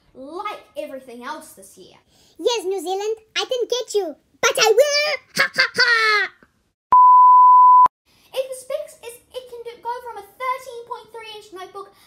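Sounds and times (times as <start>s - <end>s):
child speaking: 0.1s - 5.3s, 8.3s - 12.0s
censor bleep tone: 6.9s - 7.9s.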